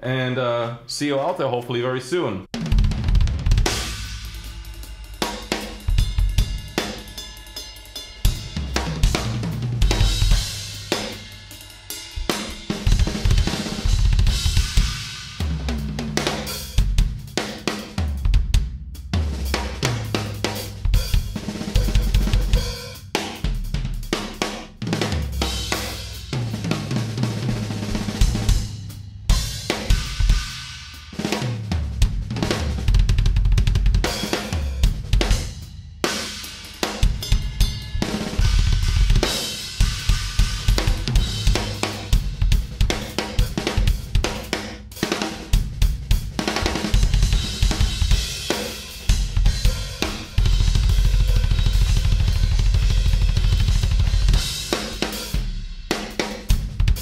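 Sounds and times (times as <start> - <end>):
rapid bass drum strokes: 2.5 - 57.0
snare and tom fills: 19.2 - 28.8, 36.1 - 57.0.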